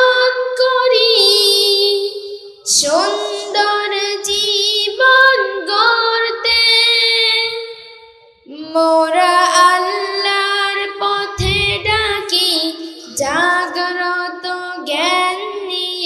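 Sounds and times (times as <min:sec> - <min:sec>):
boy singing into a microphone: 0:00.0 - 0:16.0
low thump: 0:11.4 - 0:12.3.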